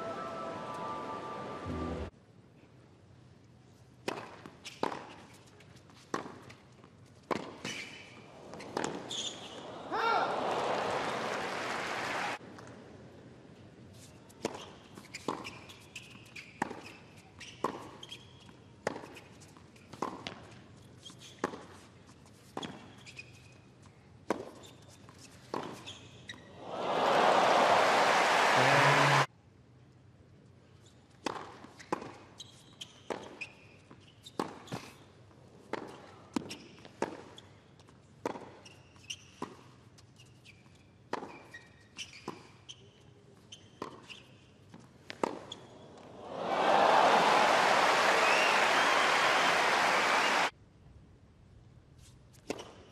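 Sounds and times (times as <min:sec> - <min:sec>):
shoe squeaks on court: 0:07.6 - 0:09.6, 0:14.0 - 0:20.0, 0:20.8 - 0:23.8, 0:24.5 - 0:26.5, 0:31.7 - 0:35.2, 0:38.5 - 0:45.9, 0:52.0 - 0:52.9
crowd applause: 0:09.7 - 0:12.4, 0:26.6 - 0:29.3, 0:46.2 - 0:50.5.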